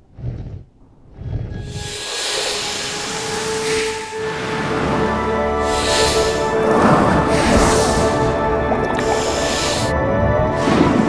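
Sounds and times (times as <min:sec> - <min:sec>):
sustained music tones: 0:01.5 - 0:11.0
rushing hiss of air: 0:01.7 - 0:10.0, 0:10.6 - 0:11.0.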